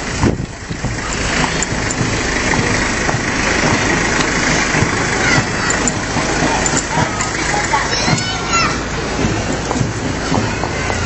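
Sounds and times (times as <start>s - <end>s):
truck engine passing: 0.0s - 11.0s.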